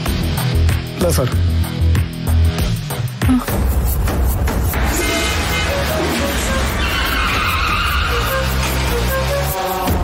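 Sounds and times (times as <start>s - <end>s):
dramatic background music: 0.0s - 10.0s
tyre screech: 4.8s - 10.0s.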